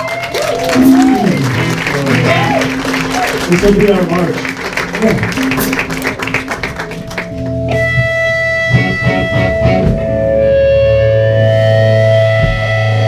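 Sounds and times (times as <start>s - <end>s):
electric guitars sustained notes: 0.0s - 13.0s
steady low bass note: 0.8s - 13.0s.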